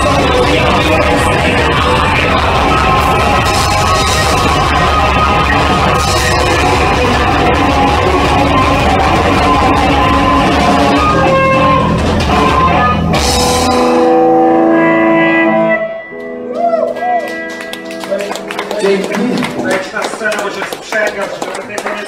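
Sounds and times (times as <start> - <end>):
live band playing loudly: 0.0 - 20.8.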